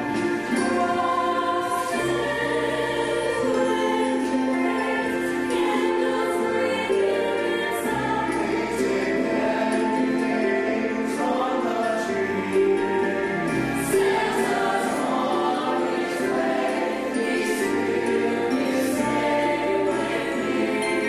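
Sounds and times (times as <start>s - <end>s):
choir singing held chords: 0.0s - 21.0s
instrumental accompaniment with bass: 0.0s - 21.0s.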